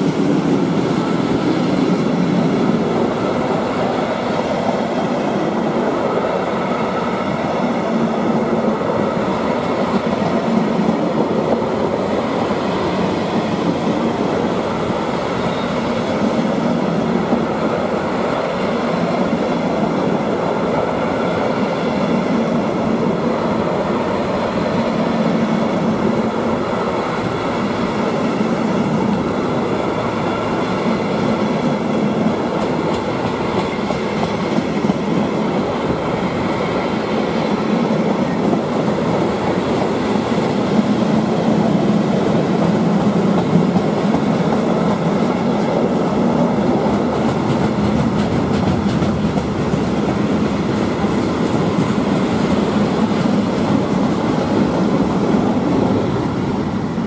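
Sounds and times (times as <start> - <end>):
freight train wheels rumbling: 0.0 - 57.0.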